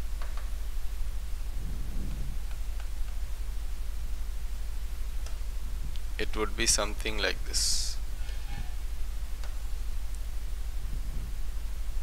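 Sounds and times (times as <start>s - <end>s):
low mains hum: 0.0s - 12.0s
steady hiss: 0.0s - 12.0s.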